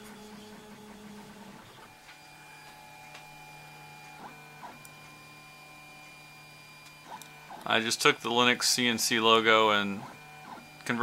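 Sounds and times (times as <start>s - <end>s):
printer stepper motors whining: 0.0s - 11.0s.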